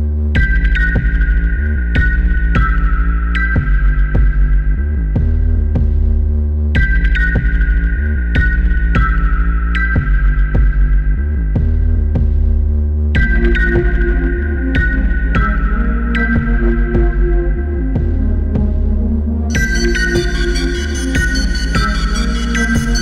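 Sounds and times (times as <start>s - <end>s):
electronic dance music: 19.5s - 23.0s.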